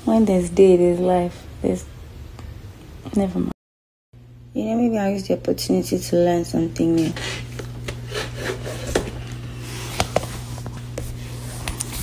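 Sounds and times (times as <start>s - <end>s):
steady low hum: 0.0s - 3.6s, 4.2s - 12.0s.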